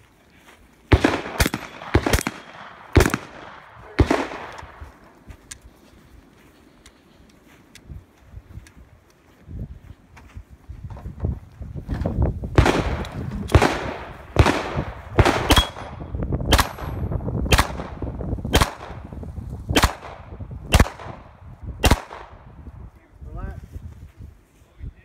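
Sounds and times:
handgun shots echoing: 0.9s - 5.0s, 12.6s - 19.0s, 19.8s - 21.2s, 21.8s - 22.4s.

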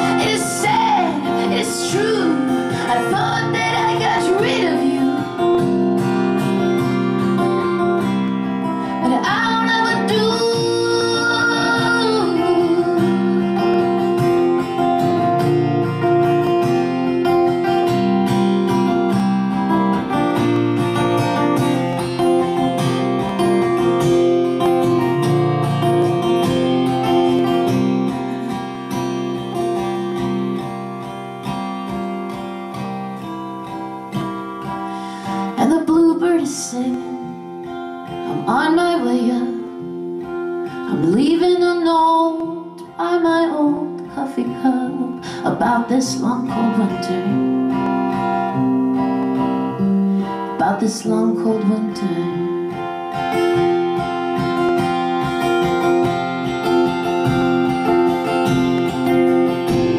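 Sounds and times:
woman's wordless singing: 0.0s - 5.4s, 9.0s - 13.6s, 35.4s - 37.6s, 38.2s - 40.0s, 40.9s - 47.6s, 50.5s - 52.7s
acoustic guitar strumming: 0.0s - 59.9s.

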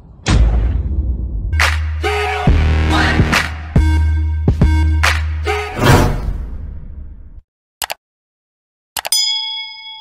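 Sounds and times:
bell ding ringing: 9.1s - 10.0s.

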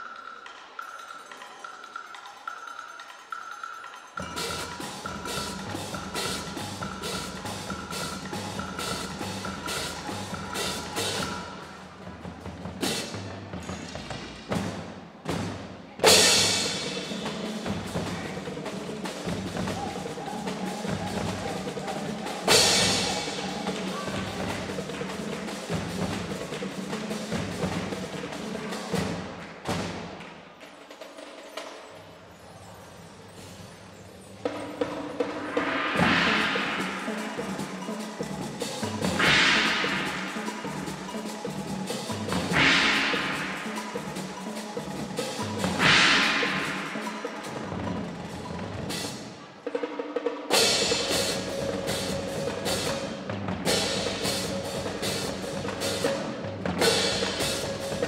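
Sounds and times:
high ticking mallet pattern: 0.0s - 12.2s, 34.0s - 49.4s, 50.5s - 58.0s
snare and bass drums: 50.5s - 58.0s.

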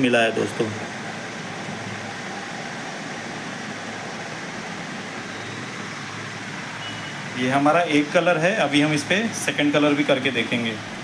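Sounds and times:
room tone: 0.0s - 11.0s.

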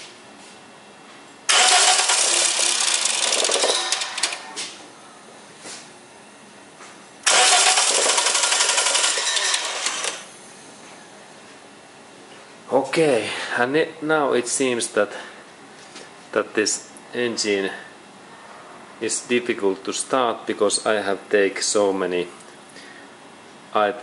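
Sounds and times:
engine cranked by starter: 1.5s - 4.5s, 7.2s - 10.3s.

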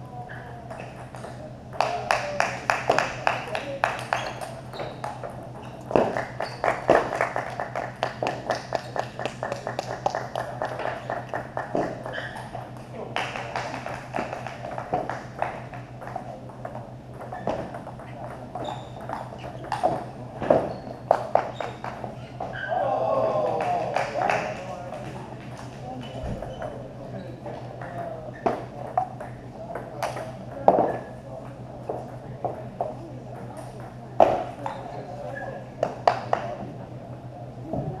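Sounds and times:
steady low hum: 0.0s - 38.0s
table tennis balls clicking: 0.4s - 22.5s.

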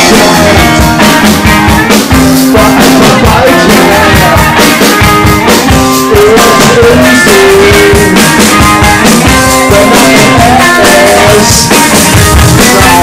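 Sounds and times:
drum kit: 0.0s - 13.0s
electric guitar: 0.0s - 13.0s
lead singer singing: 0.0s - 13.0s.

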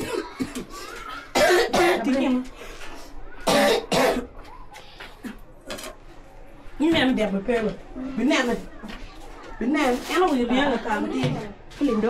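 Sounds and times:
person coughing: 0.0s - 2.2s, 3.4s - 4.3s.

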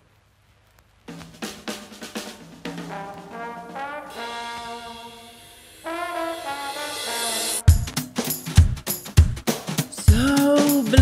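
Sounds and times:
drum kit: 1.1s - 5.2s, 5.9s - 11.0s
jazzy blues brass band: 1.9s - 5.2s, 5.8s - 8.0s.

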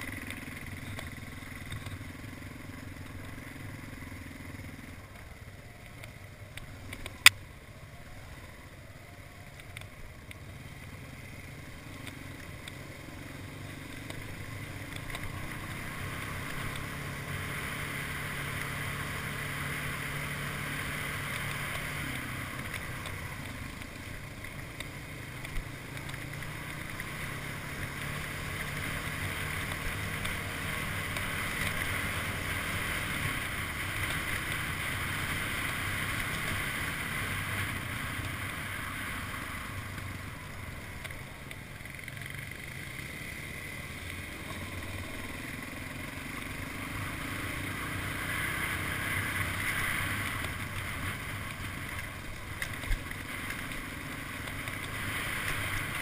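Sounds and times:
atv engine running: 0.0s - 56.0s.

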